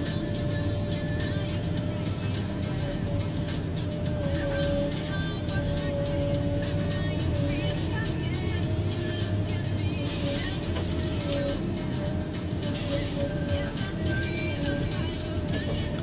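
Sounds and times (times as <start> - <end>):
diesel engine running: 0.0 - 16.0
hydraulic whine: 0.0 - 16.0.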